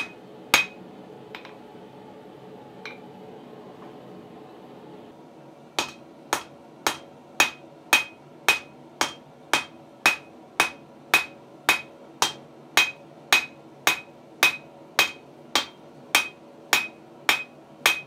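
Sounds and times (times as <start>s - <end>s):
hammer striking steel on anvil: 0.0s - 0.8s, 5.8s - 18.0s.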